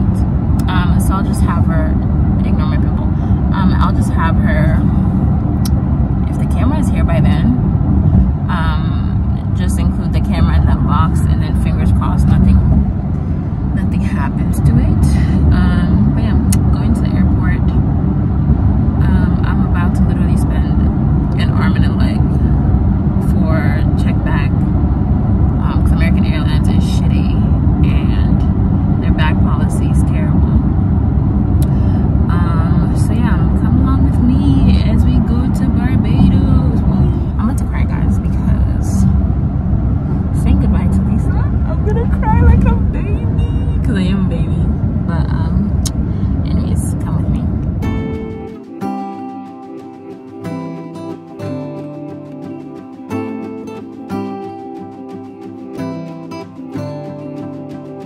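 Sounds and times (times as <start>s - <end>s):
woman talking: 0.0s - 5.1s, 6.2s - 7.6s, 8.5s - 12.8s, 13.7s - 17.8s, 19.0s - 22.5s, 23.2s - 24.7s, 25.6s - 30.6s, 31.6s - 39.1s, 40.3s - 47.6s
woman's voice: 0.0s - 5.1s, 6.2s - 7.6s, 8.5s - 12.8s, 13.7s - 17.8s, 19.0s - 22.5s, 23.2s - 24.7s, 25.6s - 30.7s, 31.6s - 39.2s, 40.3s - 47.6s
car cabin road and engine rumble: 0.0s - 48.5s.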